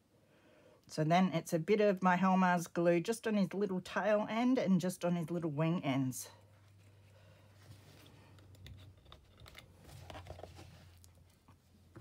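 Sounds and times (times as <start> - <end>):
paper and book handling: 6.6 - 12.0.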